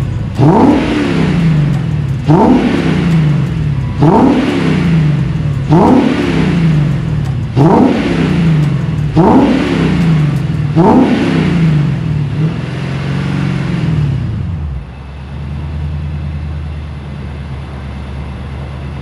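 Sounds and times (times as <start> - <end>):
car engine revving: 0.0 - 16.8.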